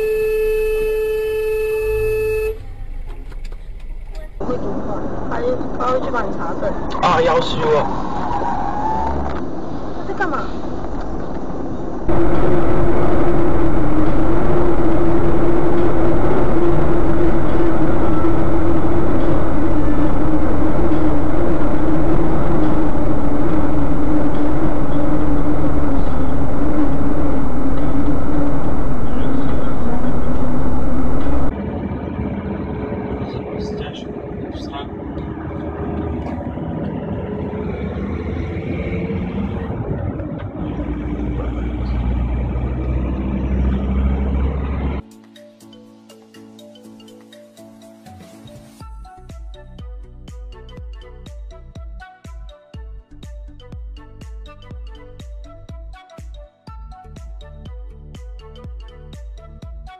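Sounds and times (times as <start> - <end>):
hum dropping in pitch: 0.0 - 5.4, 12.1 - 45.0
road and engine noise: 0.0 - 45.3.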